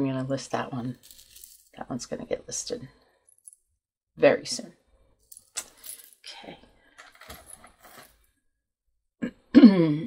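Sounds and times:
beads clicking and clinking: 0:00.9 - 0:01.8, 0:05.3 - 0:06.3.

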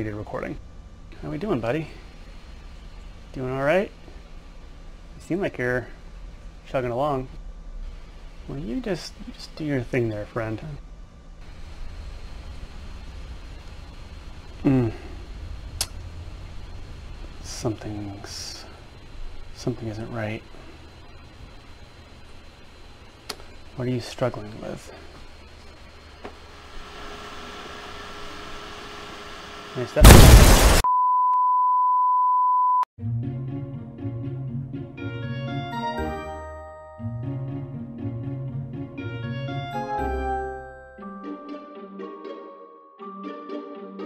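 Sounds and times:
computer fan whirring: 0:00.0 - 0:30.8
low hum: 0:00.0 - 0:30.8.

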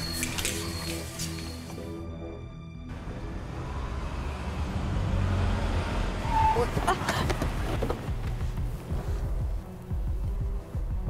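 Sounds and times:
vehicle engine and tyre rumble: 0:02.9 - 0:11.0.

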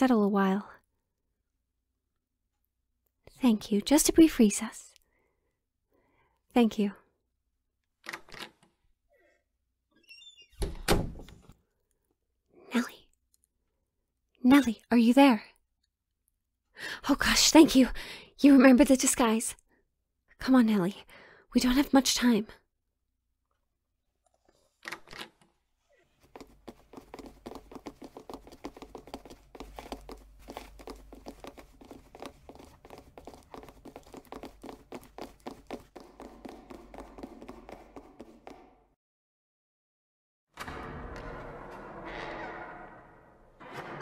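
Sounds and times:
door creaking: 0:09.9 - 0:11.4, 0:40.6 - 0:44.0
door shutting with heavy thud: 0:10.6 - 0:11.3
hurried footsteps: 0:26.2 - 0:38.9.

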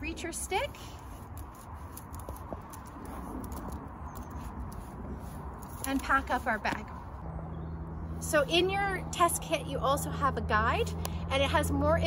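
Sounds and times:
cloth wiping a stick: 0:04.3 - 0:06.6.

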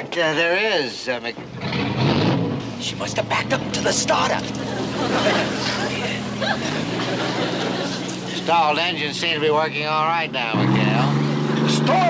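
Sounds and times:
boat engines droning: 0:01.1 - 0:12.0.

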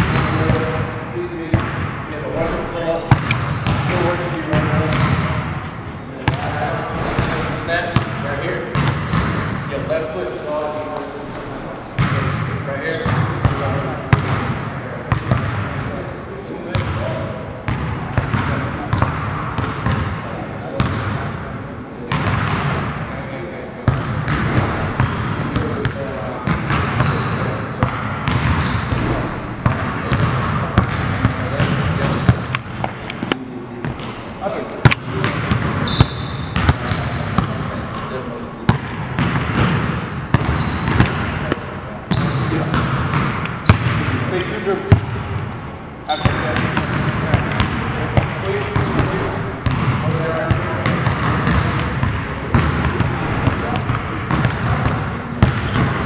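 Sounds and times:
sneaker squeaks: 0:00.0 - 0:00.8, 0:02.4 - 0:03.9, 0:04.5 - 0:06.4, 0:07.0 - 0:10.2, 0:10.9 - 0:12.2, 0:12.8 - 0:13.6, 0:17.7 - 0:22.9, 0:23.9 - 0:25.7, 0:26.4 - 0:34.2, 0:34.8 - 0:41.2, 0:42.1 - 0:44.0, 0:46.0 - 0:47.6, 0:49.6 - 0:52.7, 0:53.7 - 0:56.0
basketballs bouncing on hardwood: 0:03.0 - 0:05.5, 0:07.9 - 0:09.7, 0:12.0 - 0:12.4, 0:13.0 - 0:14.5, 0:20.8 - 0:21.1, 0:22.1 - 0:22.8, 0:23.9 - 0:33.0, 0:34.8 - 0:37.6, 0:38.6 - 0:44.1, 0:44.9 - 0:45.4, 0:46.1 - 0:56.0.

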